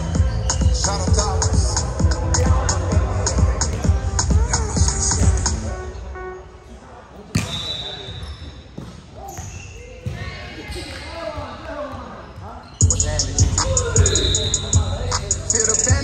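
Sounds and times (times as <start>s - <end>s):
music with steady beat: 0.0s - 5.9s, 12.8s - 16.0s
players' voices: 0.0s - 16.0s
volleyball struck in gym: 1.6s - 5.6s, 7.1s - 12.6s.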